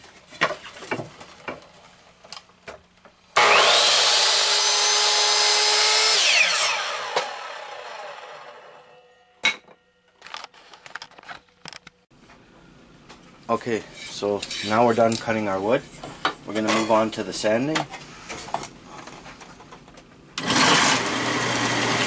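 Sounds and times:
miter saw whining: 3.4 - 9.3.

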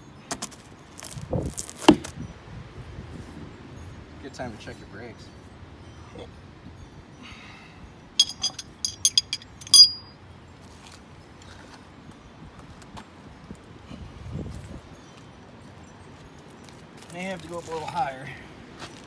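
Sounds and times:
lug nuts clinking: 8.2 - 10.2.

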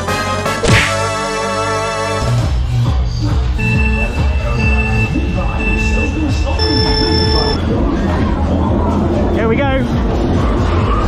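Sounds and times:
electronic buzzer pulsing tone: 3.6 - 7.6.

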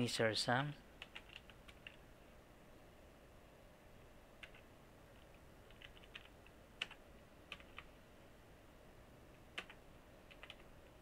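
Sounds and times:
computer keyboard keystrokes: 1.0 - 2.0, 4.4 - 7.9, 9.6 - 10.7.

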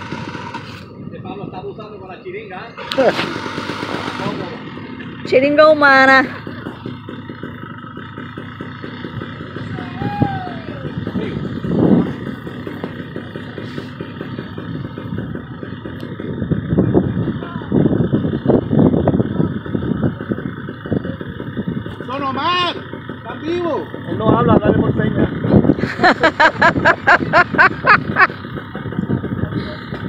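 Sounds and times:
wind buffeting microphone: 9.0 - 13.4, 14.0 - 22.1, 24.1 - 30.0.

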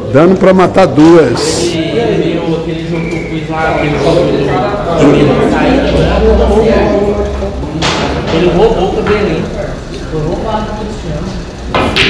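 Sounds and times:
indistinct voices: 0.0 - 12.0
sharp knock: 11.7 - 12.0.

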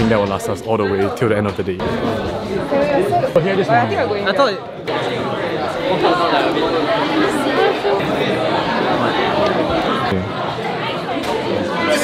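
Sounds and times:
chatter of many people: 0.0 - 12.0.

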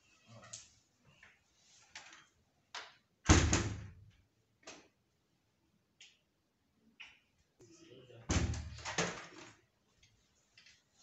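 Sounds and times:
wooden door banging shut: 3.2 - 3.9, 8.3 - 9.2.

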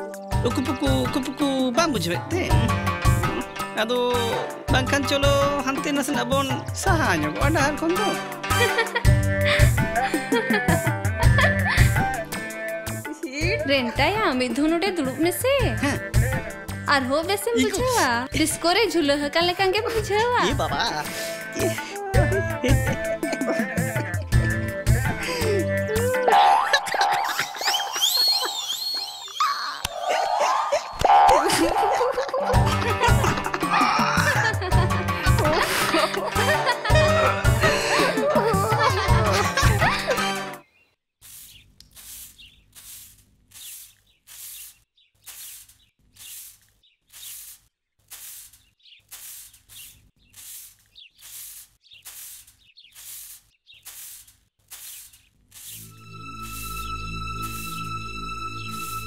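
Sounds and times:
low bass notes: 32.6 - 40.1
broom sweeping earth floor: 41.2 - 57.9
high sliding tones: 55.7 - 59.0.

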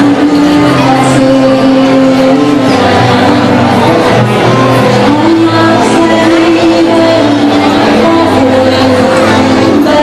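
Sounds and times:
loud music with long held notes: 0.0 - 10.0.

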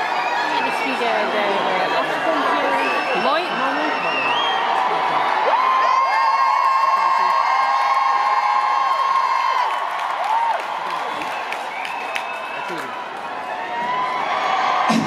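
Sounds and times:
crowd screaming and cheering: 0.0 - 15.0.

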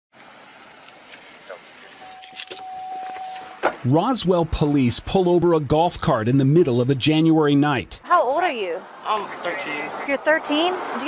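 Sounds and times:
road traffic: 0.1 - 11.0
man's voice: 3.8 - 8.0.

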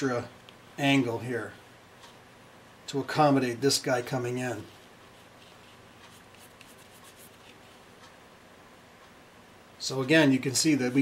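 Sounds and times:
pencil scratching on cardboard: 4.7 - 7.8.

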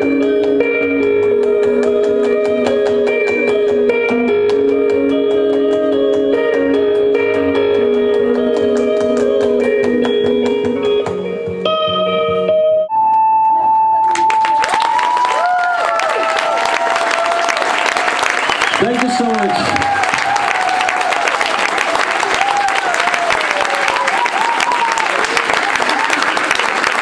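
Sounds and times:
electric guitar: 0.0 - 16.3
clapped beat: 0.3 - 7.2, 7.9 - 11.3, 14.0 - 27.0
crowd applauding: 14.0 - 27.0.

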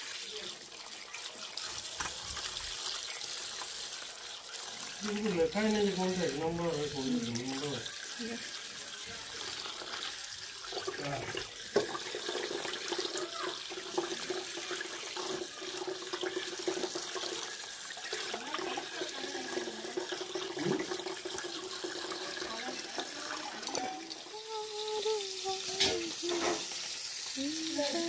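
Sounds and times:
tap water running and splashing: 0.0 - 28.0.

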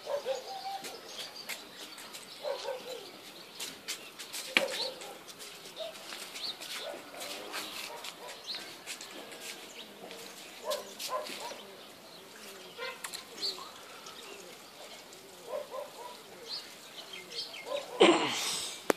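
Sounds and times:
distant dog barking: 0.0 - 0.9, 2.4 - 3.1, 4.5 - 6.0, 6.8 - 8.5, 10.6 - 11.7, 12.8 - 13.1, 15.4 - 16.3, 17.6 - 18.1.

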